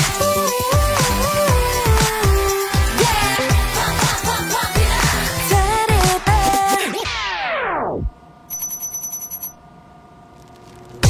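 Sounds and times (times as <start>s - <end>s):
trilling electronic ring: 8.5s - 9.7s.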